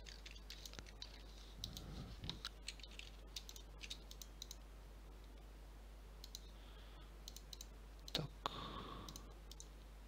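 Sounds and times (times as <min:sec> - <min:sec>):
faint computer mouse clicks: 0:00.5 - 0:04.6, 0:06.2 - 0:06.5, 0:07.2 - 0:08.2, 0:09.1 - 0:09.7.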